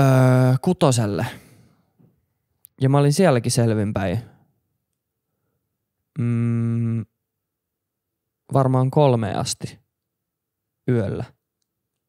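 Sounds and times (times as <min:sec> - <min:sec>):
man speaking: 0:00.0 - 0:01.5, 0:02.8 - 0:04.4, 0:08.5 - 0:09.8, 0:10.8 - 0:11.4.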